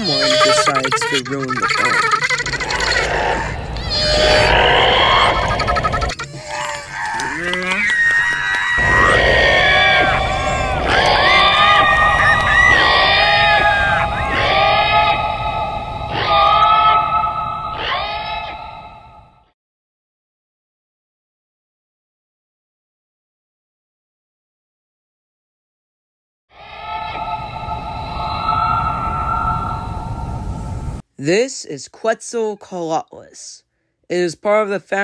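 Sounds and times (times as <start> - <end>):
short cries: 0.0 - 14.8
creature screeches and calls: 0.0 - 15.3, 16.1 - 18.6.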